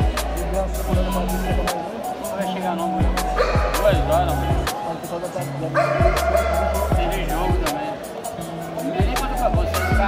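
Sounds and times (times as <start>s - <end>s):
voice over music: 0.0s - 8.0s
music with steady beat: 0.0s - 10.0s.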